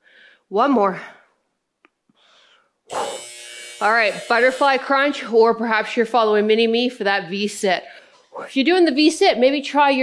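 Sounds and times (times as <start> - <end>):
timer buzzer: 2.9 - 5.3.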